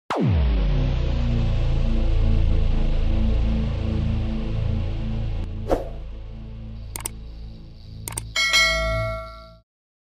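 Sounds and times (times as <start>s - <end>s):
mouse clicks: 7.0s - 7.2s, 8.1s - 8.4s
bright bell ding: 8.4s - 9.6s.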